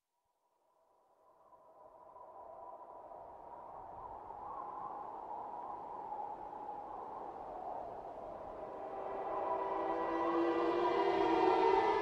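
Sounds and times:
wavering ambient drone: 0:08.5 - 0:12.0.

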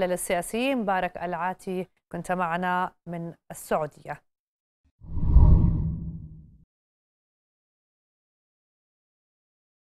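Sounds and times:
deep whoosh: 0:05.1 - 0:06.5.

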